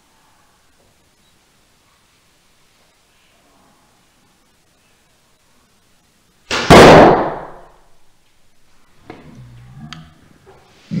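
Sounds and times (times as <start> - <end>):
arrow striking foam target: 6.5 - 7.7.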